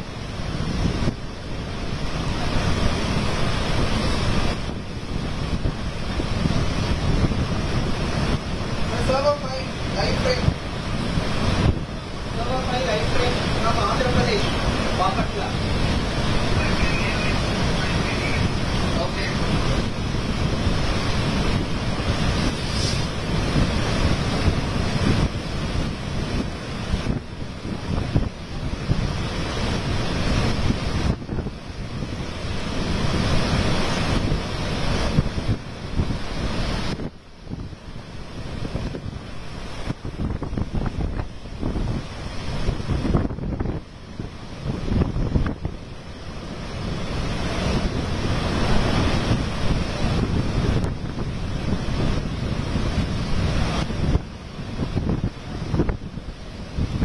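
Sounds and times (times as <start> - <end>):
storm surf crashing on beach: 0.0 - 57.0
wind buffeting microphone: 0.0 - 57.0.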